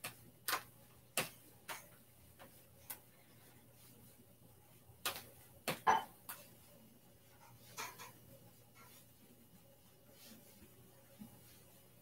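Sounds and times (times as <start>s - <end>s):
hands slapping against torso: 0.0s - 3.1s, 5.0s - 6.4s.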